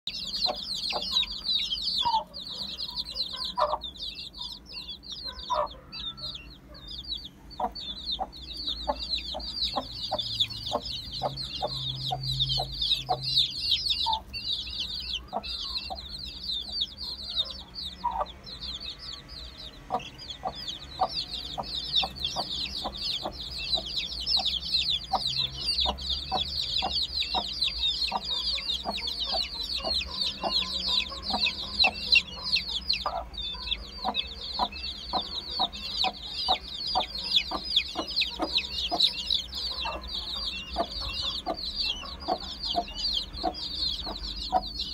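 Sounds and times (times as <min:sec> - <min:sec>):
chicks peeping: 0:00.0 - 0:44.9
hen clucking: 0:00.1 - 0:44.9.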